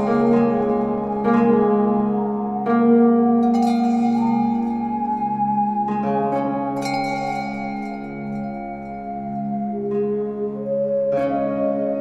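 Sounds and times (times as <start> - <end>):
bell-like note ringing: 0.0 - 2.5, 3.4 - 10.0
sustained low drone: 0.0 - 12.0.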